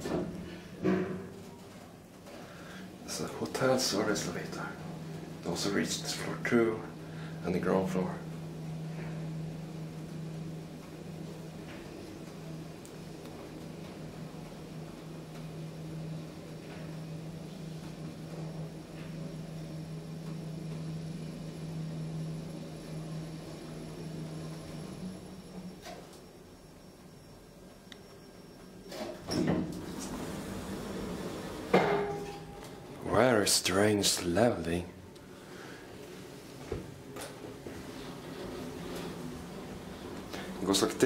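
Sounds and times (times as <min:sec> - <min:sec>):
elevator motor hum: 0:00.0 - 0:41.0
elevator doors opening: 0:28.6 - 0:33.4, 0:36.8 - 0:41.0.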